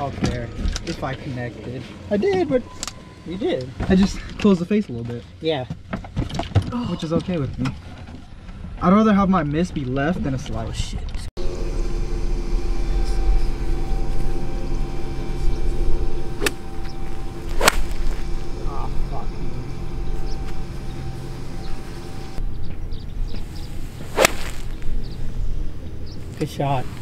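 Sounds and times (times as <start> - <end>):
low hum: 11.4 - 27.0
golf club striking ball: 16.4 - 18.3, 24.1 - 24.8.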